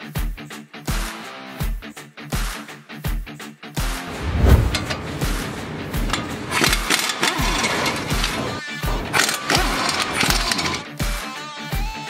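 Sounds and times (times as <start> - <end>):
impact wrench running: 4.7 - 10.8.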